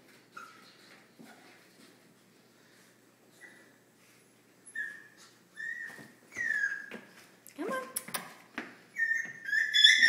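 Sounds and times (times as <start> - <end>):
puppy whining: 0.3 - 1.5, 4.6 - 7.2, 8.9 - 10.0.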